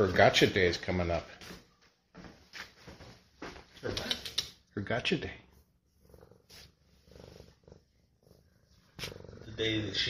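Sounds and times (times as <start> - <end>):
cat purring: 5.4 - 10.0.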